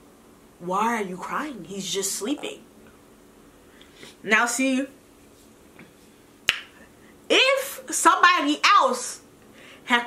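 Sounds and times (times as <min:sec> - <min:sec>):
finger snap: 0:05.8 - 0:06.8.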